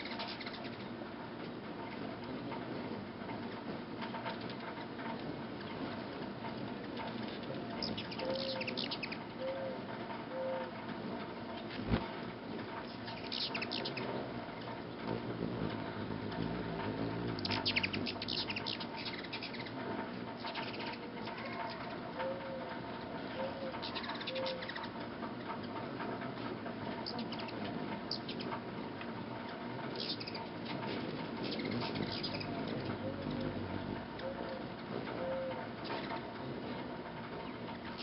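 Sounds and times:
high chittering chip calls: 0:00.0 - 0:00.9, 0:07.7 - 0:09.3, 0:12.9 - 0:14.1, 0:17.4 - 0:19.8, 0:23.8 - 0:25.0, 0:27.0 - 0:28.5, 0:29.9 - 0:30.5, 0:31.4 - 0:33.4
hummingbird wings humming: 0:00.0 - 0:38.0.

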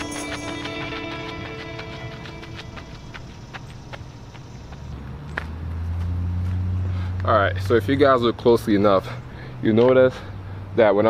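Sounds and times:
footsteps on gravel: 0:00.0 - 0:07.0.

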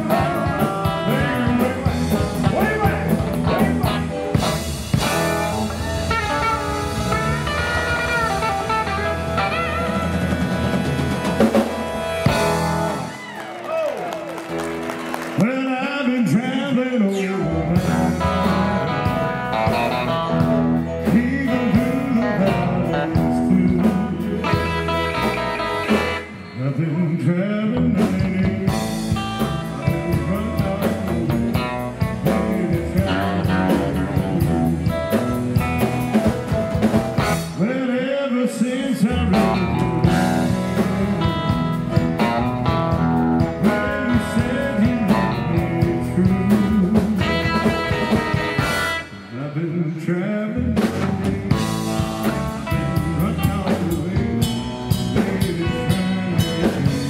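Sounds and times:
lead vocal singing: 0:00.0 - 0:08.4, 0:15.4 - 0:25.6, 0:26.2 - 0:35.4, 0:37.4 - 0:42.3, 0:43.4 - 0:57.0
drum kit: 0:00.0 - 0:15.6, 0:17.6 - 0:26.4, 0:27.8 - 0:37.8, 0:39.0 - 0:49.4, 0:50.6 - 0:57.0
acoustic and electric guitars: 0:00.0 - 0:57.0
bass: 0:00.0 - 0:57.0.

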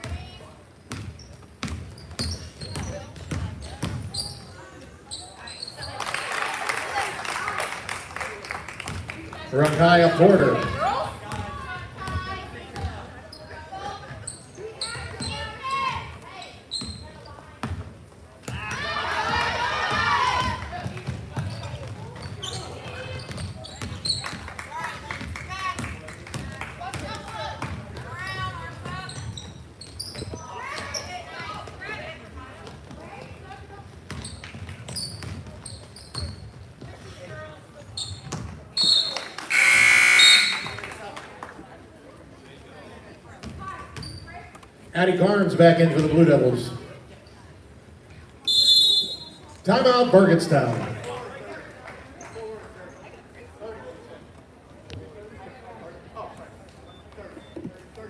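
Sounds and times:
sneakers squeaking: 0:00.0 - 0:06.3, 0:10.1 - 0:24.5, 0:25.1 - 0:40.9, 0:43.2 - 0:44.8, 0:47.1 - 0:51.3, 0:56.3 - 0:58.0
referee whistle: 0:38.8 - 0:40.8, 0:48.4 - 0:49.4.

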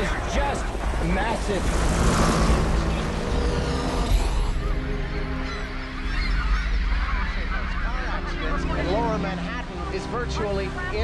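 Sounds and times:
dense rushing noise: 0:00.0 - 0:04.6
flock of birds honking: 0:00.0 - 0:11.0
sustained music: 0:00.0 - 0:11.0.

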